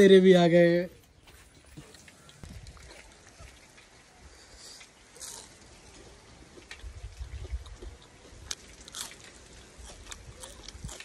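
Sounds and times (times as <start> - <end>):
chewing crunchy food: 1.2 - 11.0.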